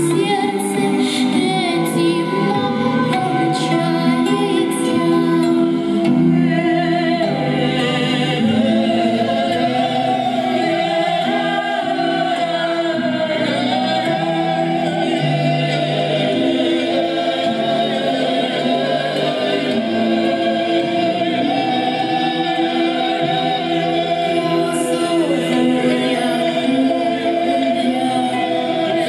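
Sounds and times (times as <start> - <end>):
choir singing held notes: 0.0 - 29.0.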